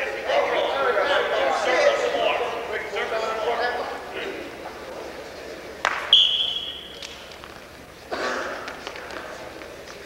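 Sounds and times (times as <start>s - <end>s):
referee whistle blast: 6.1s - 7.0s.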